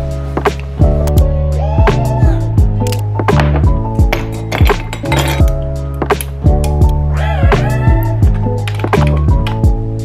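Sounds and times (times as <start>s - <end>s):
ice cubes clinking into glass: 4.3s - 5.5s.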